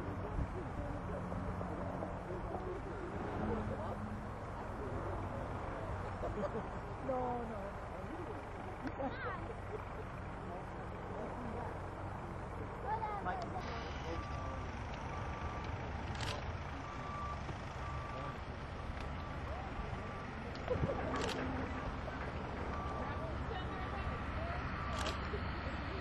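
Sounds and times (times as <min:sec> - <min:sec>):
distant light aircraft engine: 0:00.0 - 0:26.0
vehicle reversing beeper: 0:13.6 - 0:26.0.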